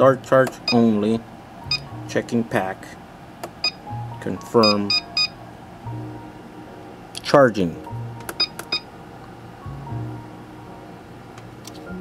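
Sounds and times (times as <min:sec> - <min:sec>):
faint background music: 0:00.0 - 0:12.0
high electronic beep: 0:01.7 - 0:01.9, 0:04.6 - 0:05.3, 0:08.4 - 0:08.8.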